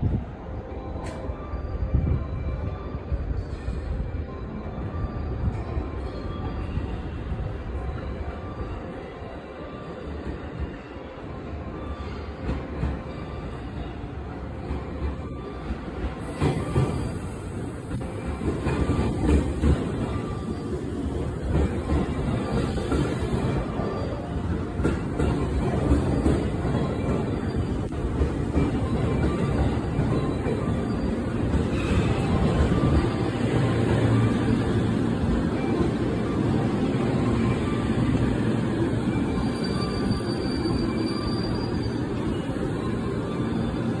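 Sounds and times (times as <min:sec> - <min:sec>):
electric train running rumble: 0:00.0 - 0:44.0
high-pitched brake squeal: 0:22.2 - 0:44.0.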